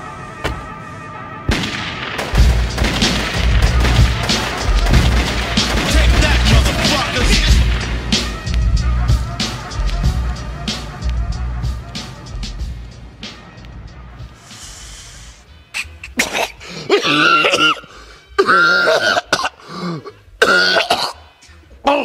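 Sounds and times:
hip-hop track: 0.0s - 18.4s
rapid gunfire: 1.5s - 8.5s
deep booms: 1.5s - 13.0s.

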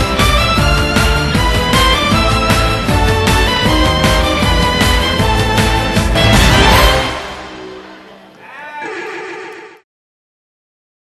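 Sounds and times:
dance music: 0.0s - 8.3s
horse whinny: 8.4s - 9.8s.

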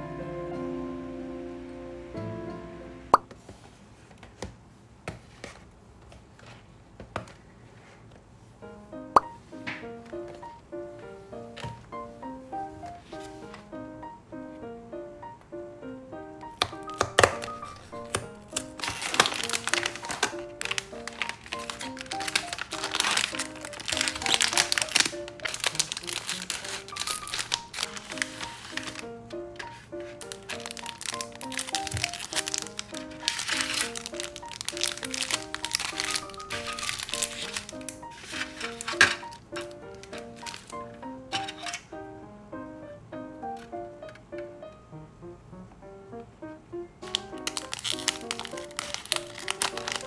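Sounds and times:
light background music: 0.0s - 3.2s, 8.6s - 50.0s
plastic and foil crinkling: 16.5s - 41.8s, 47.0s - 50.0s.

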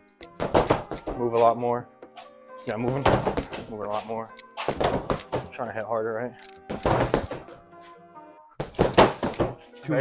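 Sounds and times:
punches thudding into punching bag: 0.4s - 1.3s, 4.6s - 5.5s, 6.7s - 7.6s, 8.6s - 9.6s.

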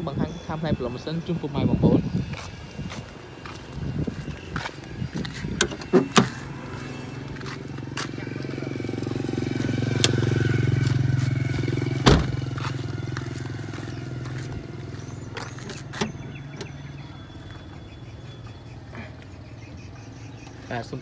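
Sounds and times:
passing vehicle engine hum: 0.0s - 21.0s
loud thump: 12.0s - 12.4s.

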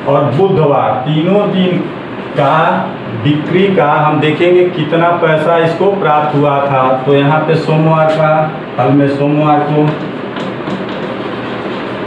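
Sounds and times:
steady background hiss: 0.0s - 10.8s
chalk tapping and scraping: 9.8s - 12.0s.

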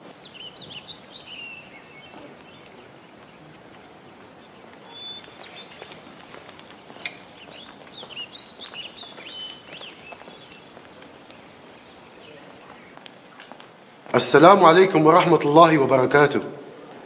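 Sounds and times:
small birds chirping: 0.0s - 13.0s
background hiss: 0.0s - 17.0s.

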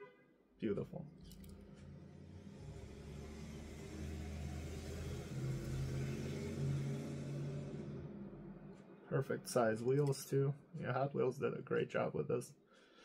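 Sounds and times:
car engine rumbling: 0.6s - 10.6s
person speaking: 9.1s - 12.5s.

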